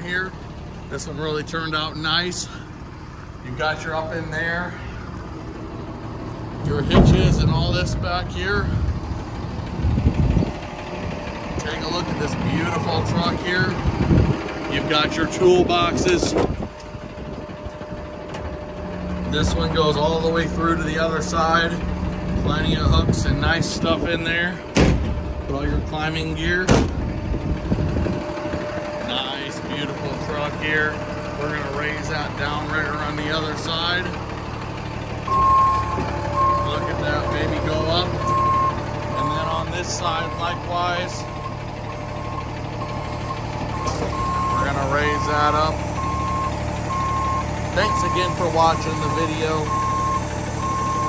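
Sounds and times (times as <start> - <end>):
diesel truck engine idling: 0.0 - 51.0
man's voice: 6.6 - 8.9, 11.5 - 13.9, 19.2 - 24.7, 29.0 - 34.2, 36.5 - 38.3, 39.0 - 41.4, 44.5 - 45.8, 47.8 - 49.8.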